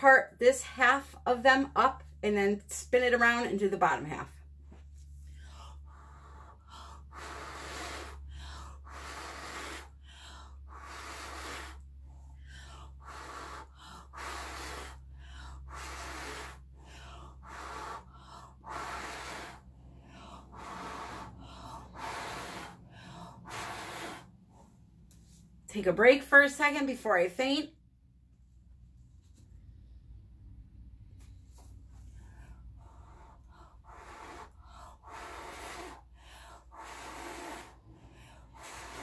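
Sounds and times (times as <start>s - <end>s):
quick gasping breaths: 4.8s - 25.0s, 31.6s - 39.0s
woman blowing hard: 5.4s - 24.4s, 32.9s - 39.0s.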